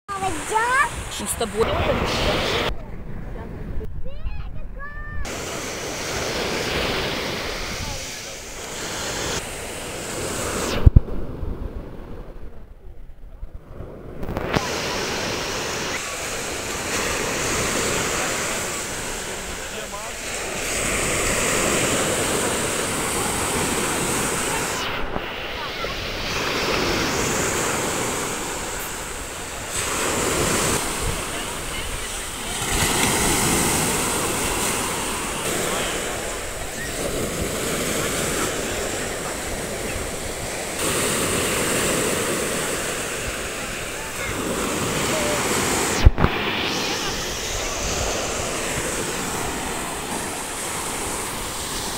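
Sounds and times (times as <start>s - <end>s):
surf breaking on shore: 0.1s - 51.9s.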